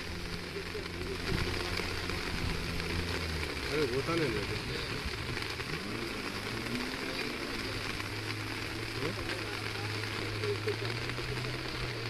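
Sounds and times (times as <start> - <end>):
floodwater rushing: 0.0 - 12.0.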